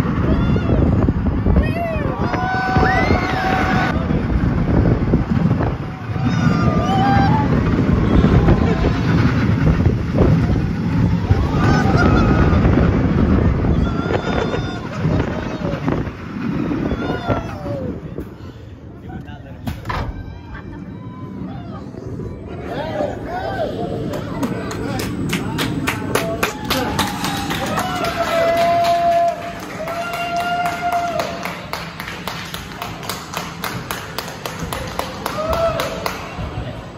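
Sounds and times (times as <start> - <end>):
roller coaster wheels rumbling: 0.0 - 36.9
wind buffeting microphone: 0.0 - 36.9.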